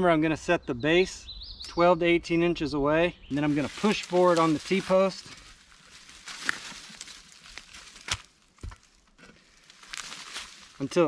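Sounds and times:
rustling: 3.3s - 11.0s.

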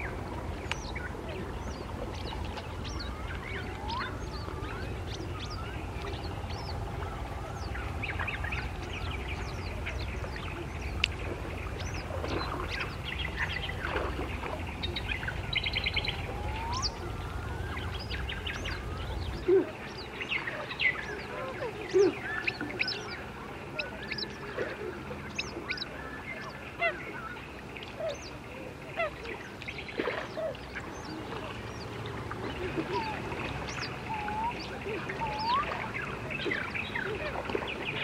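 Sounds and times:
low rumble: 0.0s - 21.2s
birds chirping and whistling: 0.8s - 11.0s, 11.6s - 24.5s, 32.6s - 38.0s.

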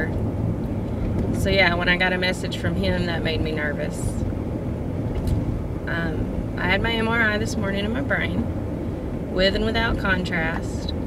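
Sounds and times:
car cabin low rumble: 0.0s - 11.0s.

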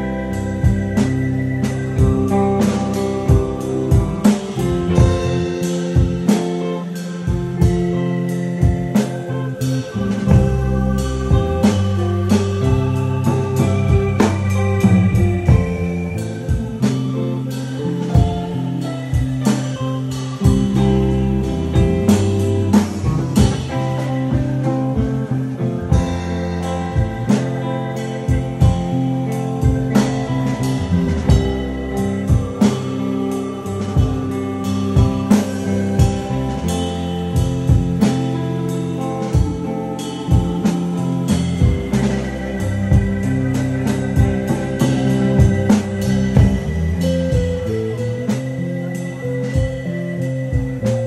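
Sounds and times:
drum and cymbal hits: 0.0s - 51.0s
electric guitar: 0.0s - 51.0s
keyboard: 0.0s - 51.0s
live band playing: 0.0s - 51.0s
sustained bass notes: 0.0s - 51.0s.

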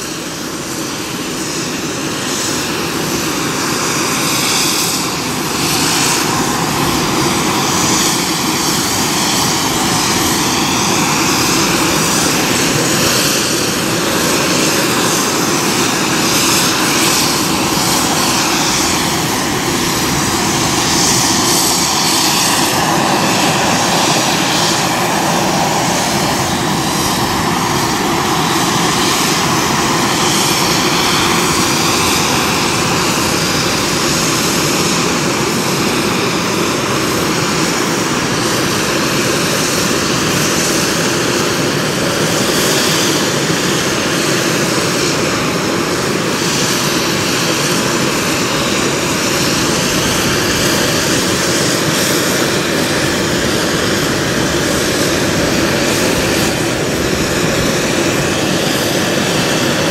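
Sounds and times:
helicopter turbine whine: 0.0s - 59.9s.

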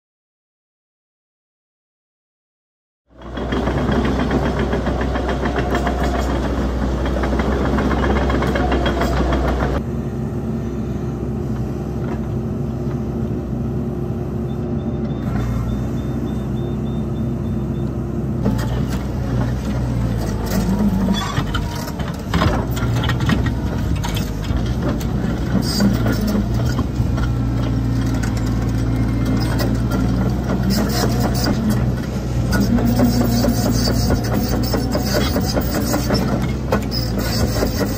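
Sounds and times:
excavator diesel engine running: 3.1s - 37.9s
excavator attachment knocks and scrapes: 18.4s - 37.9s.

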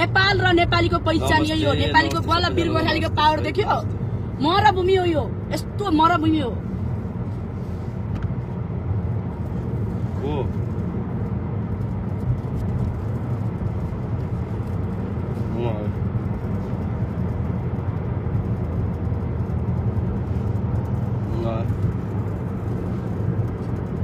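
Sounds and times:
car cabin road and engine noise: 0.0s - 24.0s.

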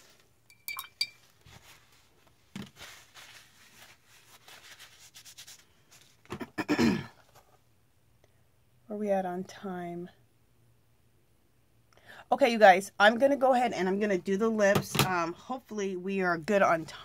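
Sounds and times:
sharp ringing clinks: 0.5s - 1.2s.

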